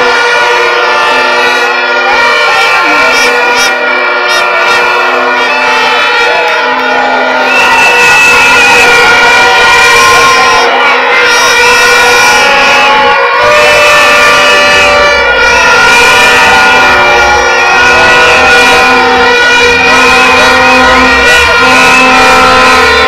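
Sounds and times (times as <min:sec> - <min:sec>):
crowd noise: 0:00.0 - 0:23.0
many horns blowing long tones: 0:00.0 - 0:23.0.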